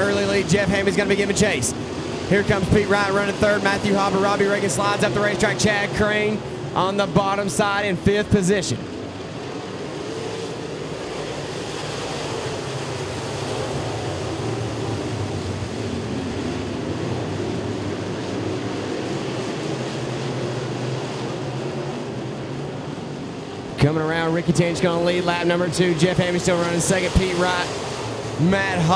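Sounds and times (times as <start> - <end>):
race car engines droning: 0.0 - 28.9.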